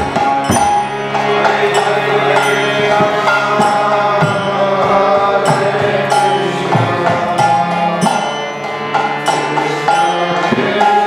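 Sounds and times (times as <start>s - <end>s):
hand drum with pitch-bending strokes: 0.0s - 9.0s
sustained melodic tones: 0.0s - 11.0s.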